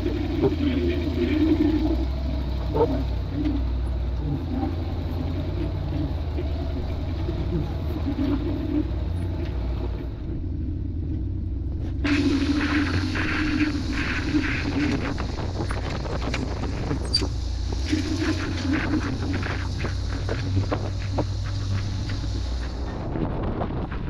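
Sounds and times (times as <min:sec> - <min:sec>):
engine low rumble: 0:00.0 - 0:24.0
wind hiss on microphone: 0:12.0 - 0:24.0.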